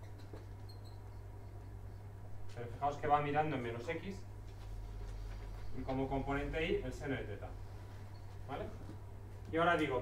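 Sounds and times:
faint high squeaks: 0.0 - 1.6
steady low hum: 0.0 - 10.0.

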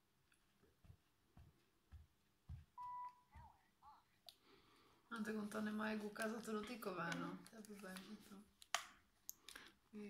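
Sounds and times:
steady electronic beep: 2.8 - 3.3.

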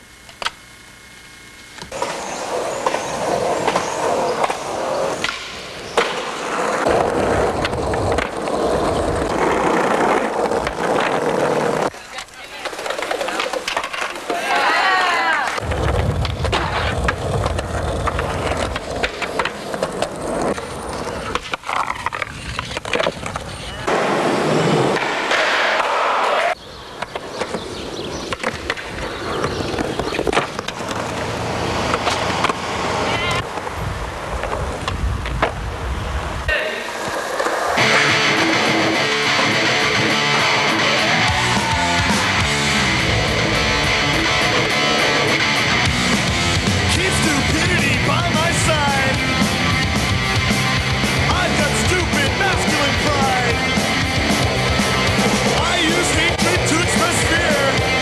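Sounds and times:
skateboard clacks: 1.8 - 35.7
skateboard rail grind: 1.8 - 58.0
skateboard wheels rolling: 1.8 - 58.0.

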